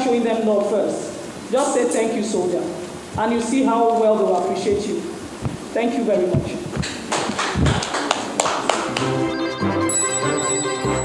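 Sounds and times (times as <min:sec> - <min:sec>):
bright chiming ident music: 0:09.4 - 0:11.0.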